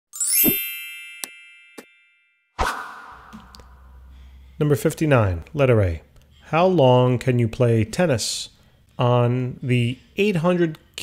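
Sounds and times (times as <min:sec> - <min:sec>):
bright ringing chime: 0:00.1 - 0:02.6
upward sweep: 0:02.6 - 0:04.0.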